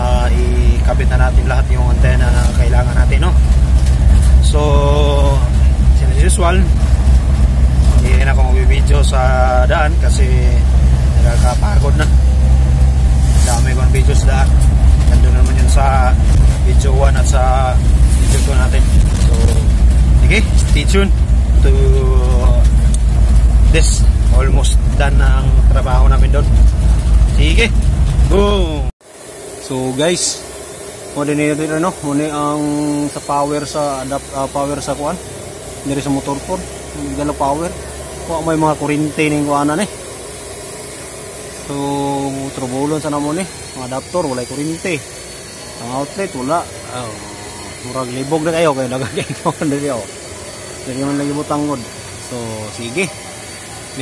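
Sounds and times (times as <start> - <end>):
man speaking: 0.0 - 3.5, 4.3 - 6.9, 7.8 - 22.9, 23.6 - 26.6, 27.3 - 29.0, 29.6 - 30.5, 31.2 - 35.2, 35.8 - 40.0, 41.6 - 45.1, 45.8 - 50.2, 50.8 - 53.2
vehicle rumble inside cabin: 0.0 - 28.9
steady hiss: 0.0 - 54.0.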